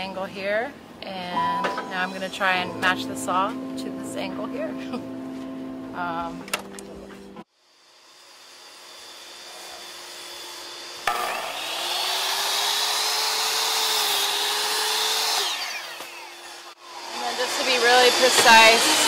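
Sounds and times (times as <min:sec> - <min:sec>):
miter saw motor whine: 0:07.6 - 0:19.0
saw blade cutting wood: 0:08.0 - 0:19.0.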